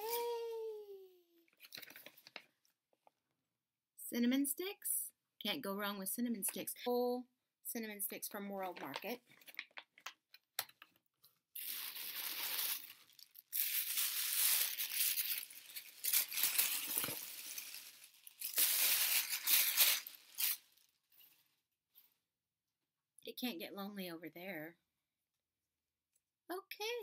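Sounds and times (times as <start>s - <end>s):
paper wrapping crinkling and tearing: 1.6s - 2.5s, 11.6s - 20.9s.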